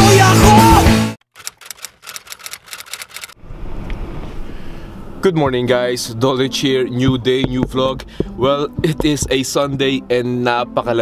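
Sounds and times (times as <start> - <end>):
sharp typewriter-like clicks: 1.3 - 3.4.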